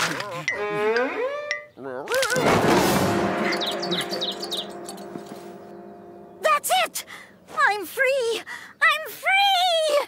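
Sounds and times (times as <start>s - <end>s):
low held tone: 3.1s - 6.6s
high tweeting chirps: 3.3s - 8.7s.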